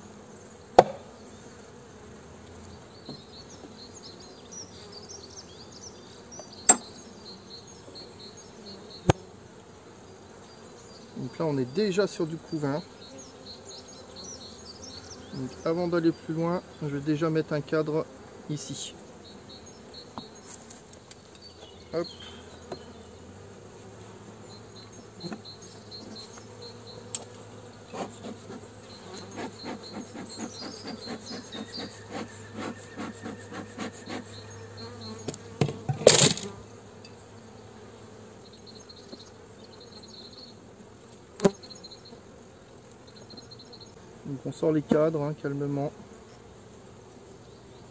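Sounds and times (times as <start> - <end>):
honeybees humming: 0.0 - 47.9
hive tool knocking on frames: 0.8 - 1.2, 3.0 - 3.3, 6.4 - 7.0, 27.1 - 36.6.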